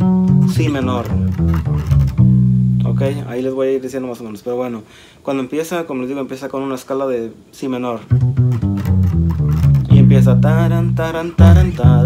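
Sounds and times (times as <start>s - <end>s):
electric bass plucked notes: 0.0s - 3.4s, 8.1s - 12.0s.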